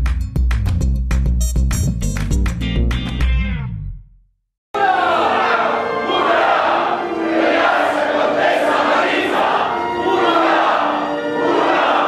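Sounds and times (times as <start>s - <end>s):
chorus singing with orchestra: 4.8s - 12.0s.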